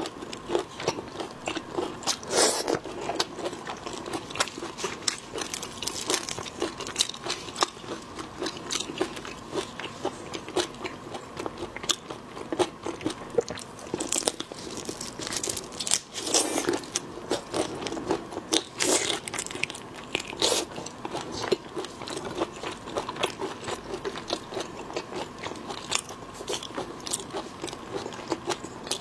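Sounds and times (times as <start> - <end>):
wet crunchy chewing: 0.0 - 29.0.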